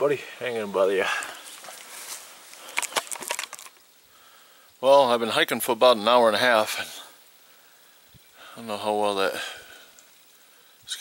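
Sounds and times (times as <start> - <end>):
camera handling rustling: 1.6 - 3.8.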